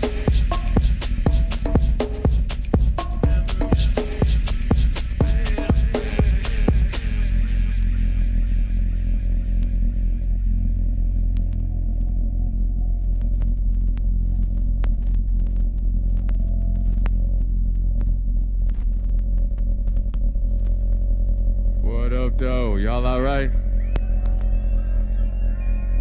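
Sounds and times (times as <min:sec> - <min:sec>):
deep feedback hum: 0:04.2 - 0:26.0.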